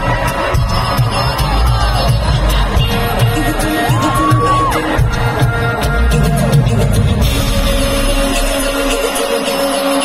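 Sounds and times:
dance-pop song over sound system: 0:00.0 - 0:10.0.

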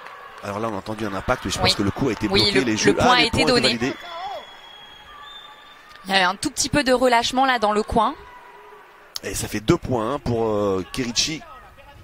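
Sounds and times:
sports hall background noise: 0:00.0 - 0:12.0.

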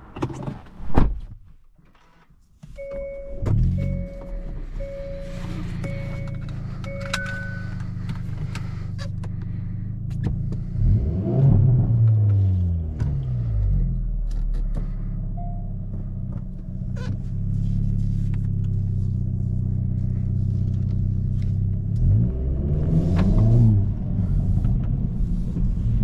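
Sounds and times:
two-tone warning chime: 0:02.8 - 0:07.8
car engine idling: 0:03.6 - 0:11.0, 0:13.0 - 0:26.0.

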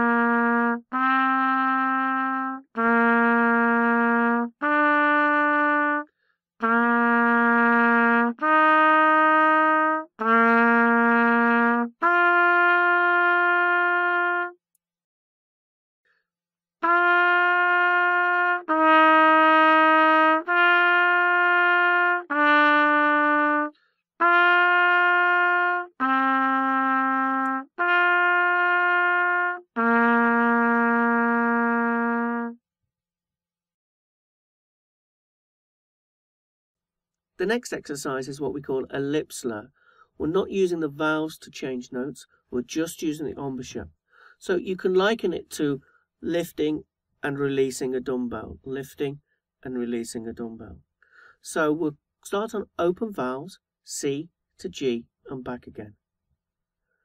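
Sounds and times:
trumpet playing held notes: 0:00.0 - 0:06.0, 0:06.6 - 0:14.6, 0:16.8 - 0:32.6.

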